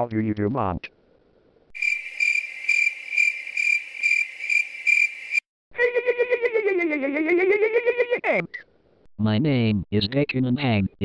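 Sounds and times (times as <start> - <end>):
crickets chirping: 1.8 - 5.4.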